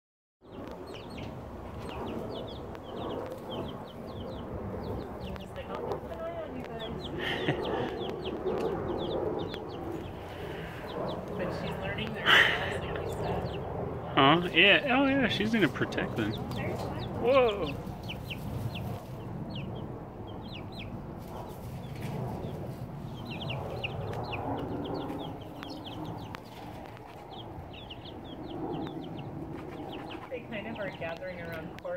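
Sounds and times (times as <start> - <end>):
chicks peeping: 0.4 - 31.9
low background rumble: 0.4 - 31.9.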